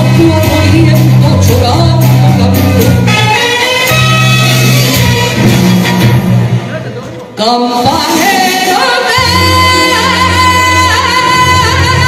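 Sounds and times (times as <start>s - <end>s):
woman singing into microphone: 0.0s - 2.8s, 7.4s - 12.0s.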